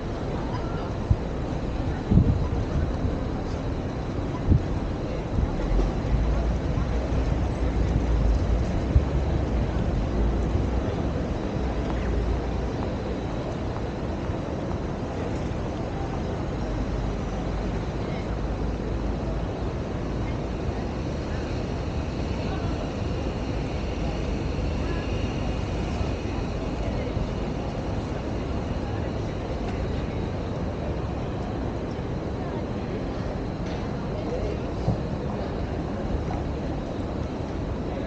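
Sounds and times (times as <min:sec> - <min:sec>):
city background rumble: 0:00.0 - 0:38.0
indistinct voices of passers-by: 0:00.0 - 0:38.0.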